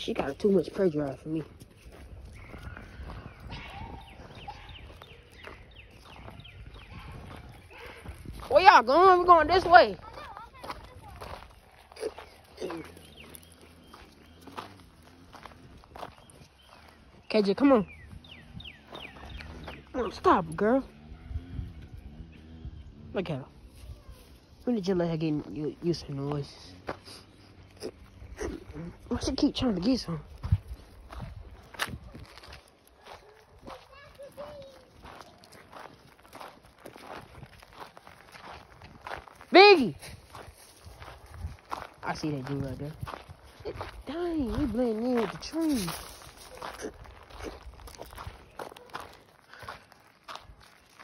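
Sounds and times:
footsteps on gravelly dirt path: 0.0 - 51.0.

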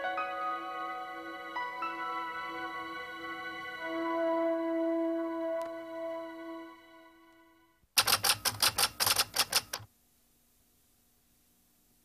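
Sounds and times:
typewriter keys striking: 8.0 - 9.9.

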